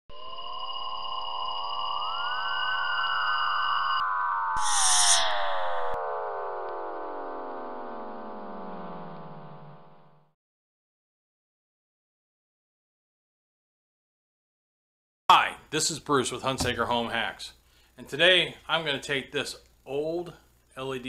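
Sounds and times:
electronic tones: 0.1s - 10.3s
gliding cluster of tones: 0.1s - 10.4s.

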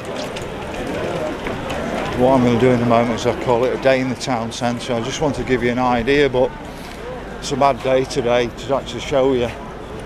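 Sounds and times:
footsteps on paving: 0.0s - 4.8s
faint voices of passers-by: 0.0s - 10.0s.

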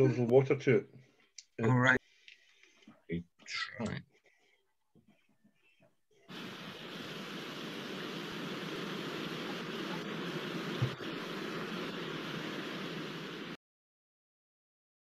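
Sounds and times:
steady rushing ambient noise: 6.3s - 13.6s.

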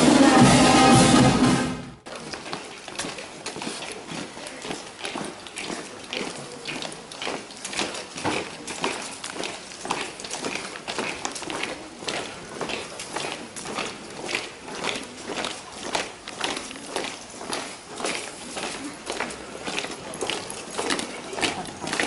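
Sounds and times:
brass band playing: 0.0s - 2.0s
shoes marching on paving stones: 2.0s - 22.0s.

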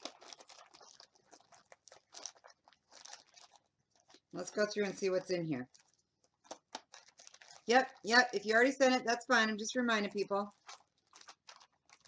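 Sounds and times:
packaging rustling and crinkling: 0.0s - 8.7s, 10.0s - 12.0s.

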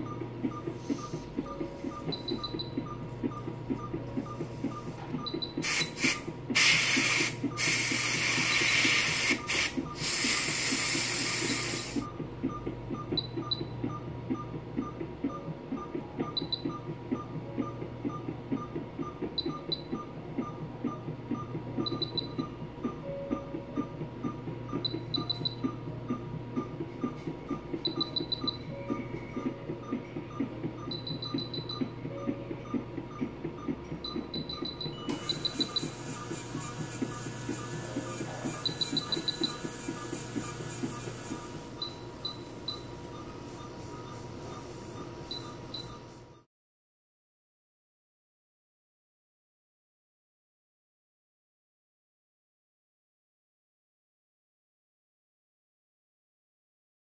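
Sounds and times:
short high electronic beeps: 0.5s - 13.7s, 27.8s - 46.1s.

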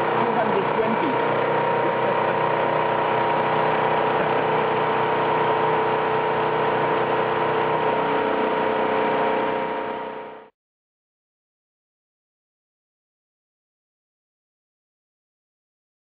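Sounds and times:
machine mechanical hum with whine: 0.0s - 10.5s.

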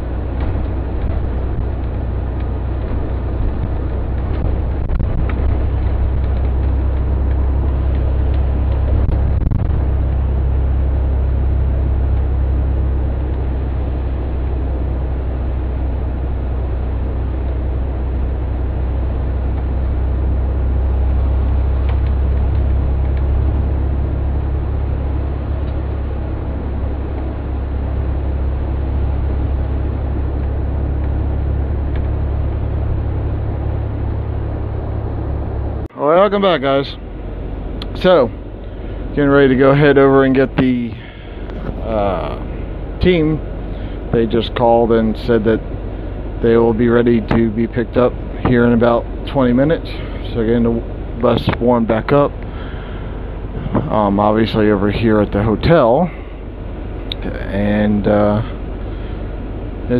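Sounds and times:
coach engine and road rumble: 0.0s - 59.9s.

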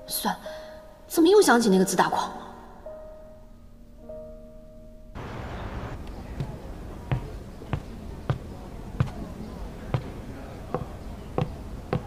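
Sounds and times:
soft background music: 0.0s - 12.0s
footsteps on hard floor: 6.3s - 9.2s, 9.9s - 12.0s.

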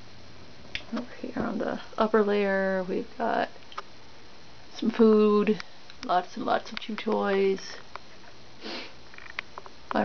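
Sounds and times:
nose sniff: 8.6s - 9.0s.

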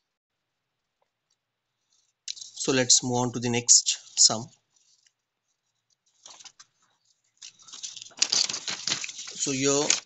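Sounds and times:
paper page rustling: 4.7s - 10.0s.

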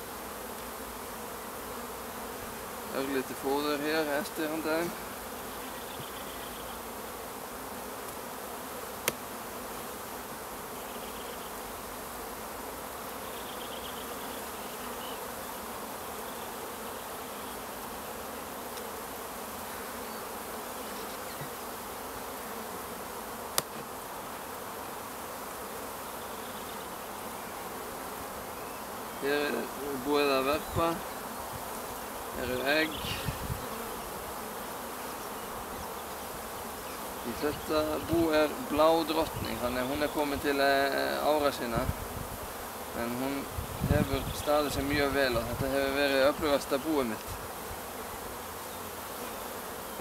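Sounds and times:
honeybees buzzing: 0.0s - 50.0s.

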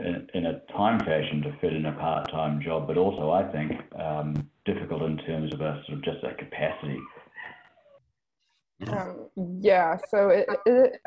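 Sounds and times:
person talking: 0.0s - 7.2s, 8.8s - 11.0s
man speaking: 0.0s - 7.3s, 8.8s - 9.1s.

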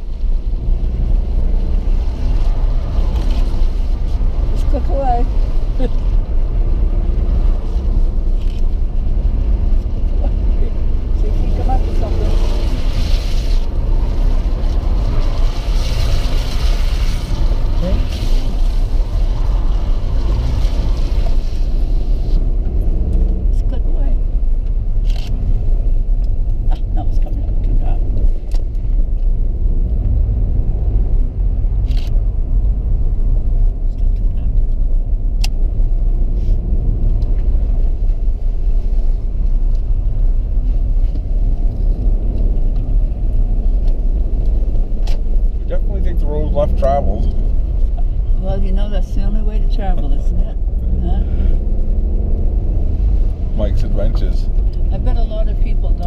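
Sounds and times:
car driving from inside cabin: 0.0s - 56.0s.

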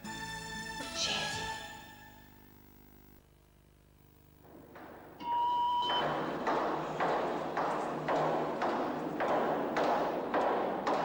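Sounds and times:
electronic test tone: 5.2s - 6.2s.

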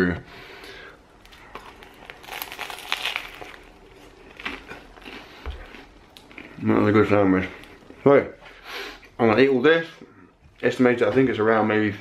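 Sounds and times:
crunching crusty bread: 1.2s - 7.1s.

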